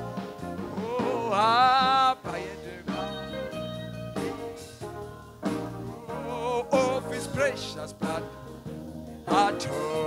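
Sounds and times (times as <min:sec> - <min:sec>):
keyboard sustained chords: 0:00.0 - 0:10.0
man singing into microphone: 0:00.8 - 0:03.6, 0:06.1 - 0:08.4, 0:09.3 - 0:10.0.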